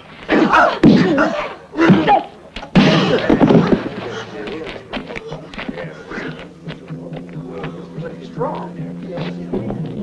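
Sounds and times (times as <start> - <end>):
men grunting and shouting: 0.3 - 2.2.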